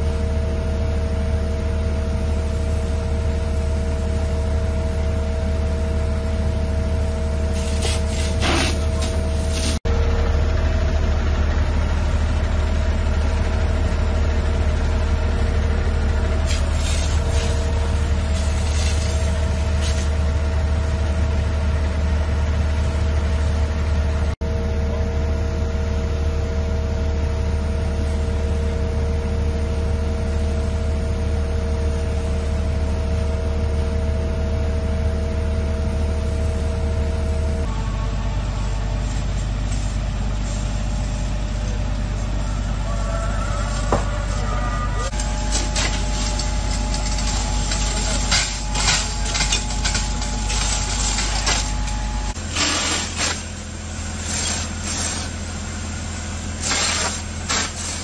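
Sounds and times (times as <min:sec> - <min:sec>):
fire engine humming: 0:00.0 - 0:58.0
hoses spraying water: 0:07.5 - 0:09.8, 0:16.4 - 0:20.1, 0:43.0 - 0:51.8, 0:52.4 - 0:55.4, 0:56.6 - 0:58.0.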